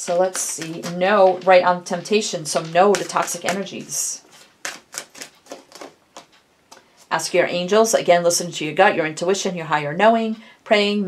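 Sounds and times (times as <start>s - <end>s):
cards being shuffled: 0.0s - 6.4s.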